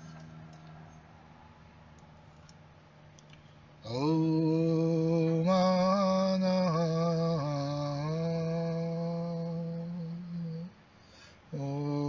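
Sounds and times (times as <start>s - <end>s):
man chanting low held notes: 11.5s - 12.0s.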